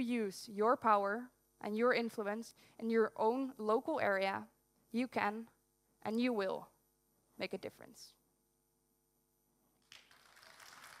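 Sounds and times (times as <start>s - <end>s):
audience applauding: 9.9s - 11.0s.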